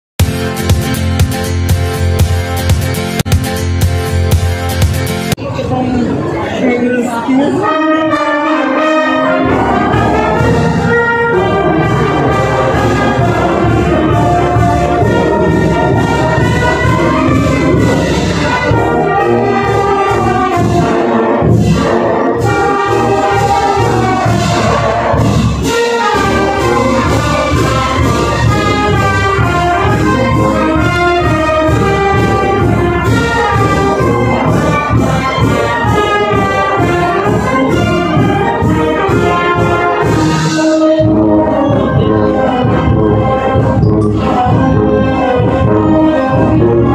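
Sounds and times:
drums and crashing cymbals: 0:00.2 - 0:05.4
marching brass band playing: 0:00.2 - 0:05.4, 0:07.0 - 0:46.9.

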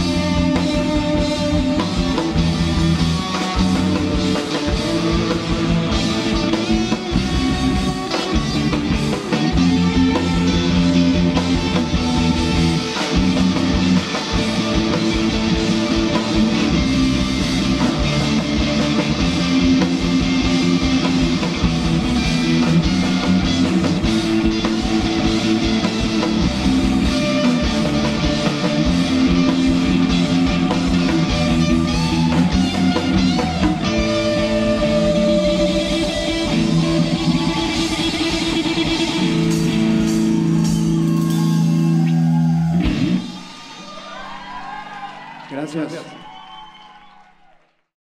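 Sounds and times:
rock band playing: 0:00.0 - 0:46.4.

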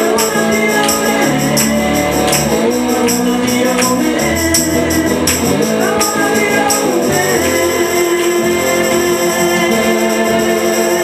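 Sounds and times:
electric slide guitar: 0:00.0 - 0:11.0
tambourine shaken and struck: 0:00.0 - 0:11.0.

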